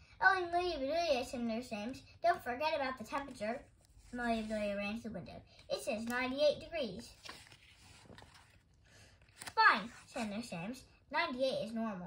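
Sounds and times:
paper page turning: 3.2 - 4.8, 7.0 - 10.5.

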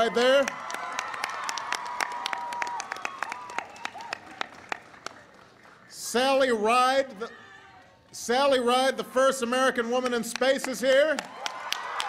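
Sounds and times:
audience applauding: 0.0 - 6.0, 11.2 - 12.0.

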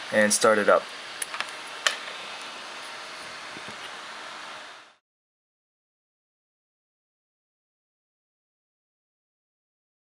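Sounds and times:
steady hiss: 0.0 - 5.0.

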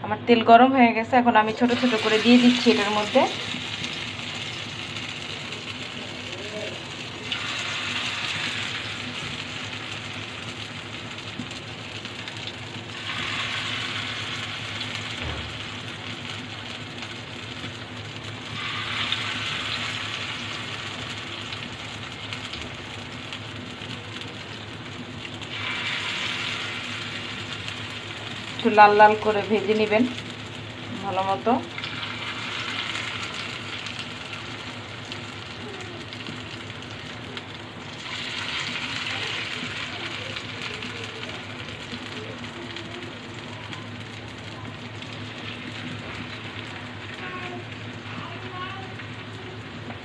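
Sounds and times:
hot oil sizzling: 0.8 - 50.0.

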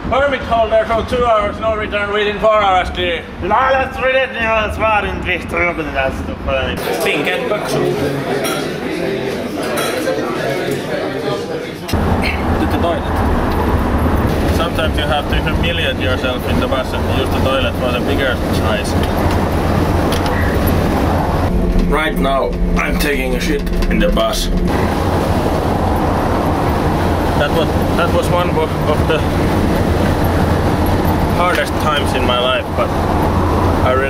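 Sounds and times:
bus engine rumble: 11.9 - 34.0
road noise: 11.9 - 34.0
man speaking: 14.5 - 19.0, 21.8 - 24.6, 27.4 - 29.4, 31.4 - 32.9.

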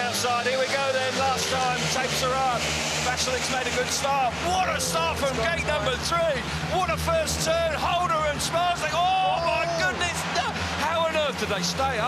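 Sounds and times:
motorcycle engines droning: 0.0 - 12.0
commentator exclaiming: 4.0 - 12.0.

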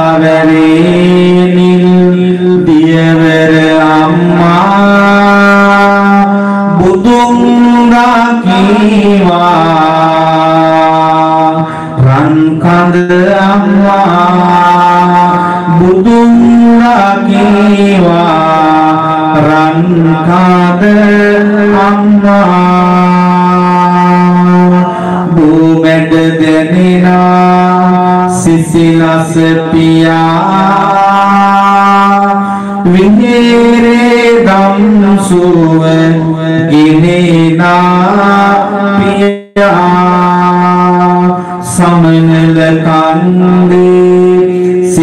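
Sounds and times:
monk chanting through a microphone: 0.0 - 45.0.

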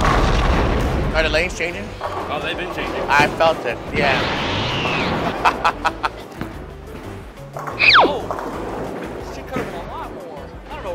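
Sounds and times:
electric zap whoosh: 3.9 - 5.4, 7.8 - 8.2
falling whistle glide: 4.1 - 5.4, 7.8 - 8.3.

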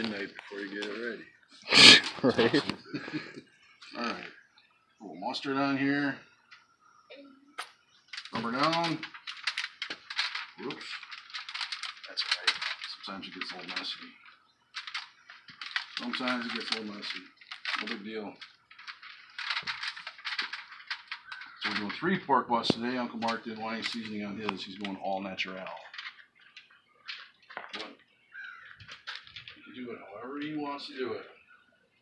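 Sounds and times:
aluminium foil crinkling: 0.0 - 4.4, 7.6 - 29.8.

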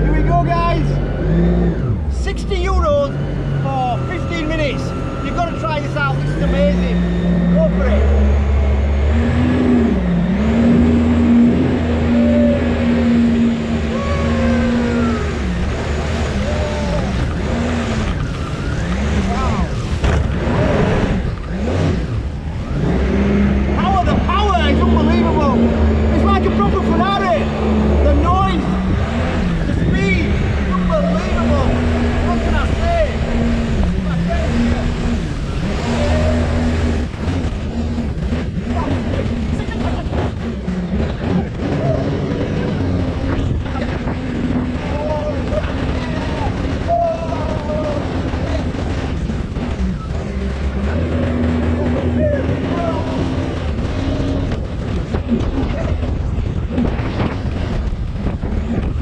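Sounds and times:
speedboat engine running hard: 0.0 - 59.0
water and wind wash: 0.0 - 59.0.

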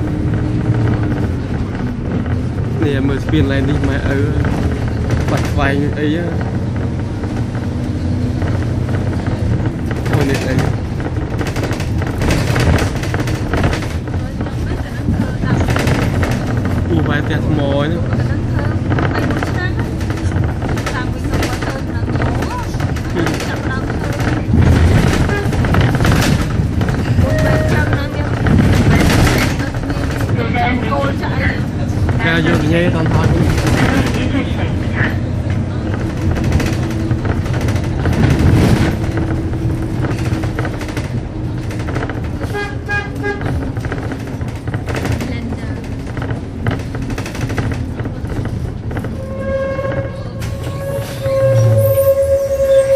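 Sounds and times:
bus engine rumble: 0.0 - 52.9
road noise: 0.0 - 52.9
voices talking: 27.2 - 37.2.

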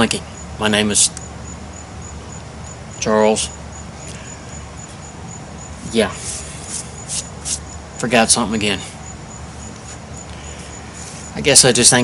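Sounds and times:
insect chirping: 0.0 - 12.0
low background rumble: 0.0 - 12.0.

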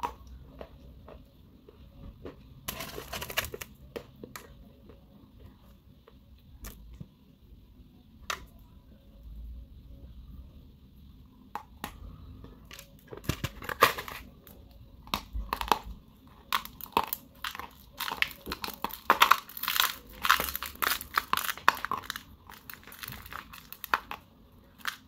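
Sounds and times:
crunching dry clay chunks: 2.1 - 5.0, 11.8 - 25.0.

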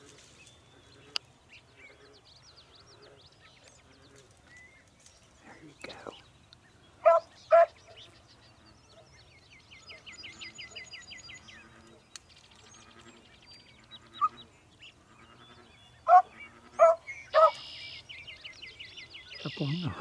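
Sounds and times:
dog barking: 7.0 - 7.8, 16.1 - 17.6.

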